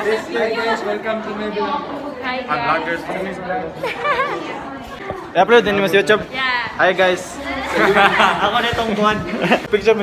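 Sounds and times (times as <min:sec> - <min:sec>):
young people chattering: 0:00.0 - 0:10.0.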